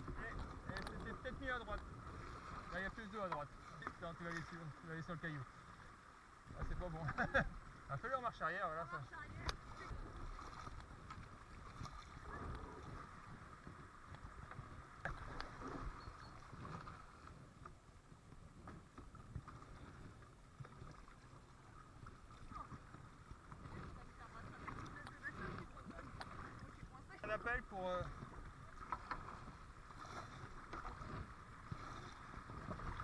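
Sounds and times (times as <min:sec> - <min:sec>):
wind rumble on microphone: 0:00.0 - 0:02.8, 0:09.0 - 0:33.0
paddle blades dipping: 0:00.0 - 0:33.0
water rippling over stones: 0:00.0 - 0:33.0.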